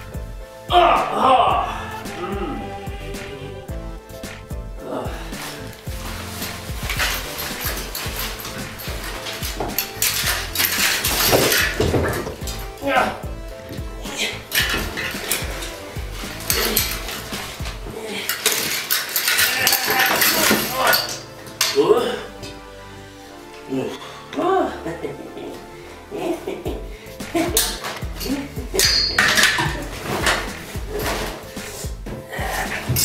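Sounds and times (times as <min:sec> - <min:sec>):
background music: 0:00.0 - 0:33.0
clothes rail falling over: 0:05.4 - 0:22.0, 0:27.2 - 0:31.9
metal hangers clanking and rattling: 0:05.4 - 0:22.6, 0:27.3 - 0:33.0.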